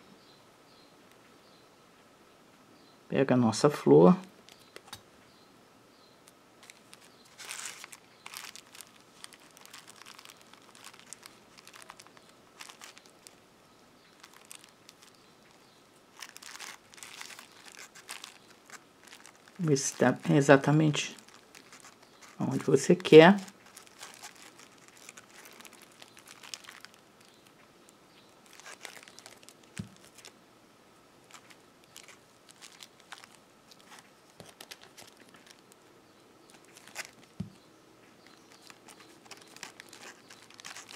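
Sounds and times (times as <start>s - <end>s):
hands rustling fabric: 6.6s - 13.5s, 14.1s - 27.6s, 28.3s - 30.3s, 31.2s - 35.8s, 38.2s - 40.9s
plastic wrapper crinkling: 6.6s - 30.4s, 31.2s - 37.6s, 38.2s - 40.9s.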